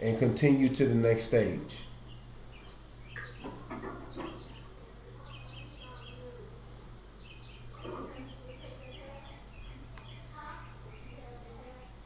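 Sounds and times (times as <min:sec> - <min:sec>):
quiet voices: 0:03.2 - 0:07.0, 0:07.6 - 0:12.0.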